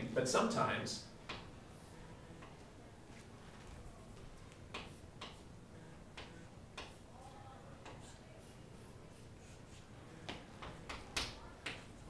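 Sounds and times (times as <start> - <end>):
chalk tapping and scraping on chalkboard: 4.0 - 7.2, 7.8 - 12.0.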